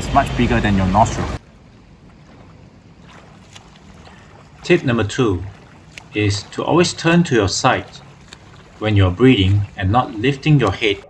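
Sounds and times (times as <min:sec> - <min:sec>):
pool water: 0:00.0 - 0:11.0.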